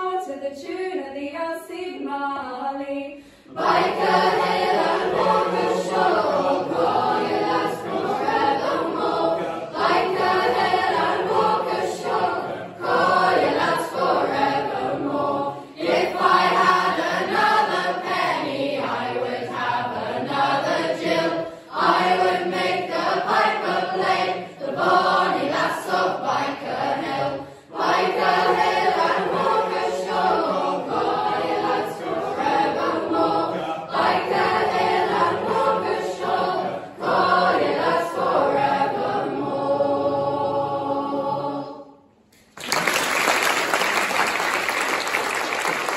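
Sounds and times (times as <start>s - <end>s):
choir singing in harmony: 3.5s - 42.2s.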